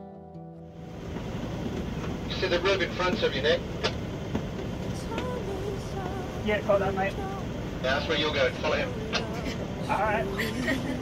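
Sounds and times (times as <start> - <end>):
boat engine low rumble: 0.6 - 11.0.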